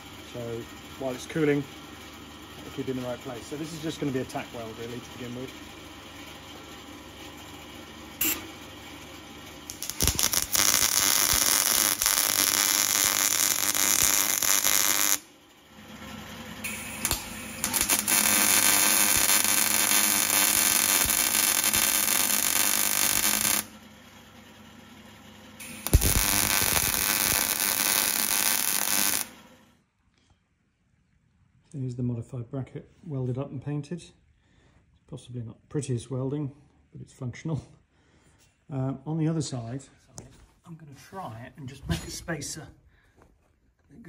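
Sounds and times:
welding arc crackling: 0:08.2 - 0:08.5, 0:09.6 - 0:15.3, 0:16.6 - 0:23.8, 0:25.6 - 0:29.5
low hum: 0:08.2 - 0:30.3.

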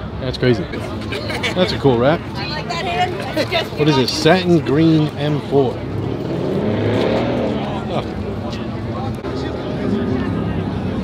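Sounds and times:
car engine revving: 0:05.2 - 0:11.0.

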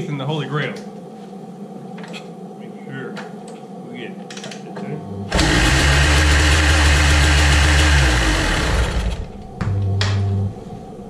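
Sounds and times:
motorcycle engine running: 0:05.3 - 0:09.9.

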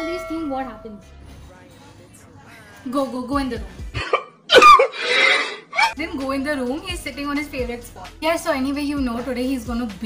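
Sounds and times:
man crying in choked sobs: 0:04.0 - 0:06.0.

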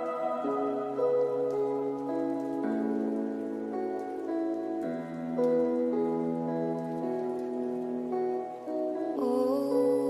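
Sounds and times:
falling rain: 0:00.0 - 0:10.0
slow sad instrumental music: 0:00.0 - 0:10.0.

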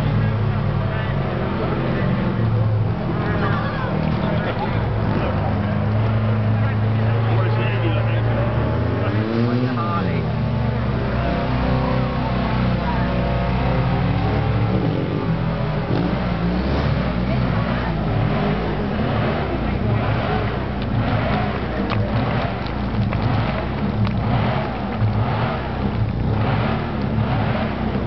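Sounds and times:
motorcycle engine revving: 0:00.0 - 0:28.0
voices: 0:00.0 - 0:28.0.

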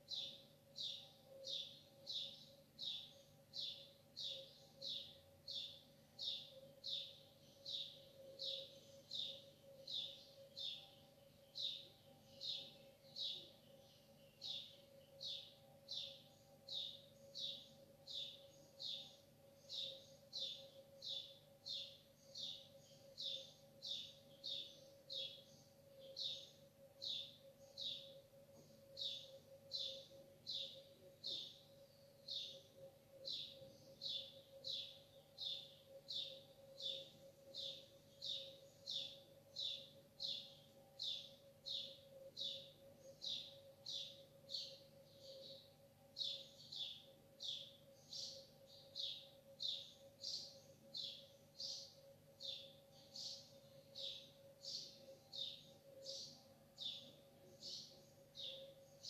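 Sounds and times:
low steady hum: 0:00.0 - 0:59.0
small bird chirping: 0:00.0 - 0:59.0.

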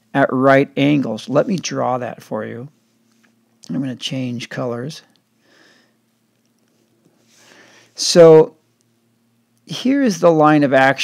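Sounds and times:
faint short breath: 0:07.2 - 0:08.0.

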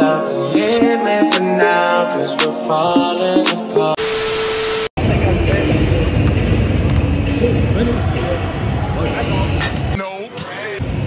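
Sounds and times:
static hiss: 0:04.0 - 0:04.9
noisy voices: 0:05.0 - 0:11.0.

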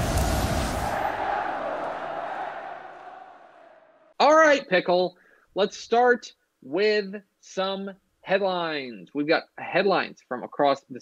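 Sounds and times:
crowd roar: 0:00.0 - 0:04.1.

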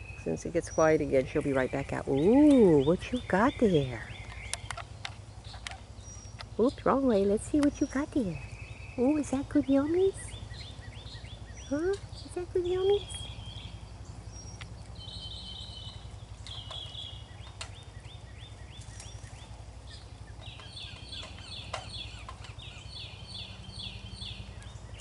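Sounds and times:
bird singing: 0:00.0 - 0:25.0
steady low hum: 0:00.0 - 0:25.0.

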